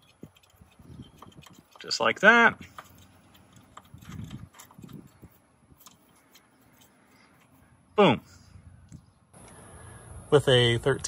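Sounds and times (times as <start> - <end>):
small metallic clicks: 0.0 - 7.6.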